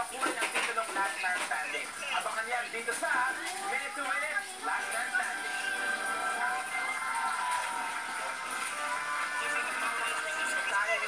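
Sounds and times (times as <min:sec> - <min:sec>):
music from television: 0:00.0 - 0:11.0.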